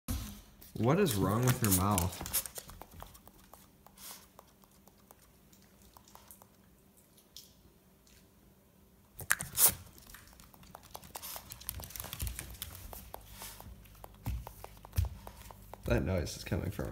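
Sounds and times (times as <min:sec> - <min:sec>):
dog grinding teeth: 0:09.2 - 0:15.6.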